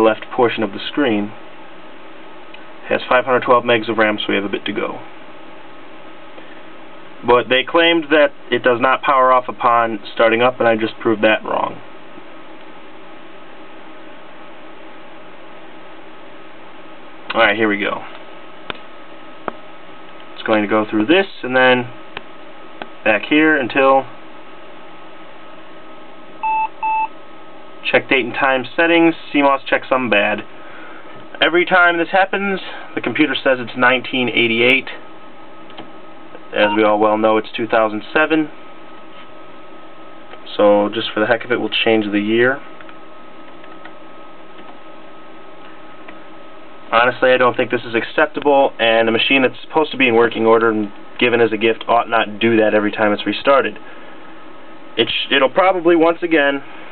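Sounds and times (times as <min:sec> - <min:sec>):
steady background hiss: 0:00.0 - 0:56.9
thin constant whine: 0:00.0 - 0:56.9.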